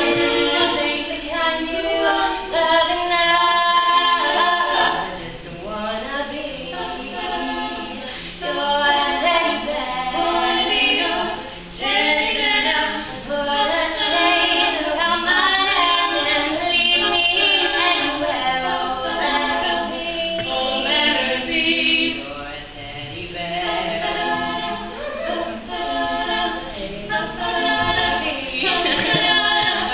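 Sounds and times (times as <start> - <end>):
women singing in harmony: 0.0 - 29.9.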